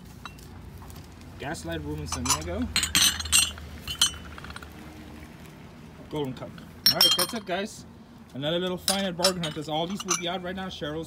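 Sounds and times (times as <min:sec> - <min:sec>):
glass ashtrays clinking: 0:02.1 - 0:04.7, 0:06.9 - 0:07.5, 0:08.8 - 0:10.4.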